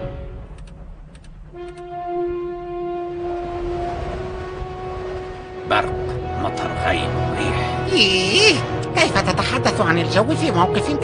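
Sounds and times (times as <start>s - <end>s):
low rumble: 0.0s - 10.4s
steady horn-like note: 1.5s - 7.9s.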